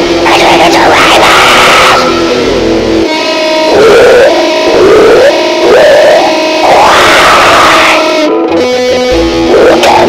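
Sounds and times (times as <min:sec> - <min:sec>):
heavy metal music: 0:00.0 - 0:10.0
sliding guitar line: 0:00.0 - 0:10.0.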